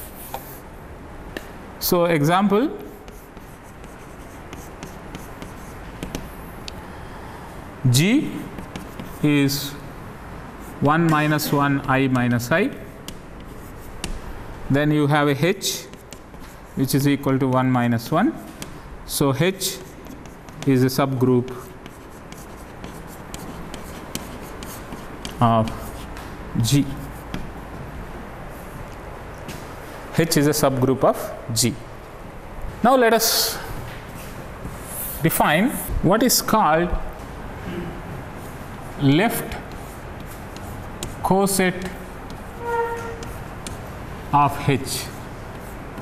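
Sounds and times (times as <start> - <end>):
chalk tapping: 0.0 - 0.6, 2.7 - 6.8, 8.3 - 9.6, 10.6 - 18.8, 19.4 - 27.9, 38.4 - 44.0, 44.6 - 46.0
chalk scratching on blackboard: 0.0 - 0.7, 2.8 - 6.3, 8.4 - 9.8, 10.6 - 14.2, 15.4 - 17.6, 19.5 - 26.2, 38.4 - 44.0, 44.6 - 46.0.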